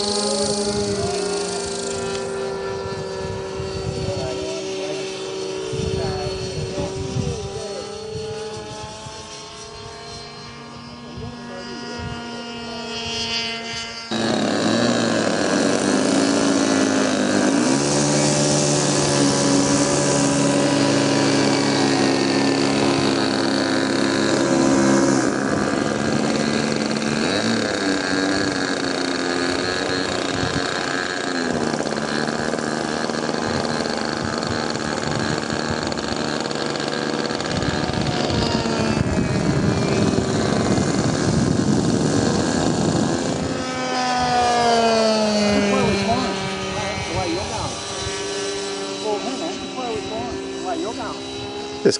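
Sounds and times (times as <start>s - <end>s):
electric ducted fan whine: 0.0s - 51.9s.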